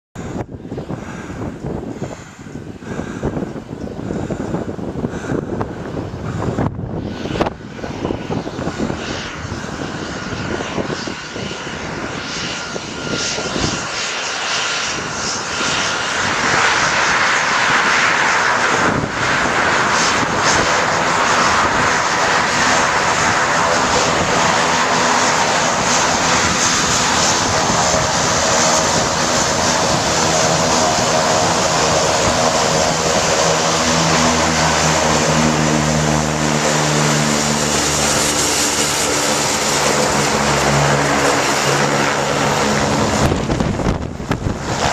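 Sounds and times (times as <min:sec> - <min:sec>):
airplane engine and propeller: 0:00.2 - 0:44.9
low engine drone with tones: 0:00.2 - 0:44.9.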